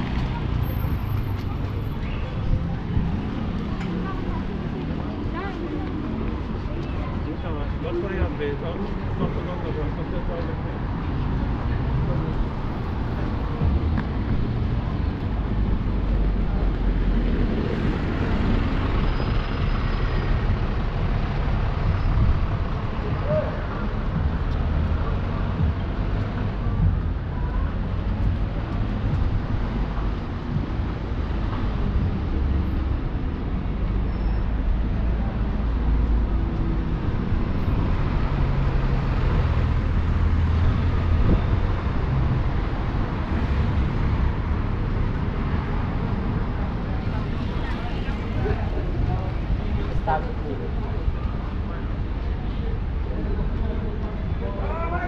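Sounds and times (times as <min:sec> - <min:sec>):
faint voices of passers-by: 0:00.0 - 0:55.0
road traffic of cars and buses: 0:00.0 - 0:55.0.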